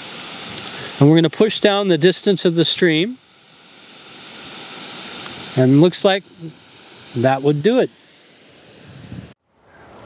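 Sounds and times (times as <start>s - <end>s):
sprinkler water spraying: 0.0s - 9.4s.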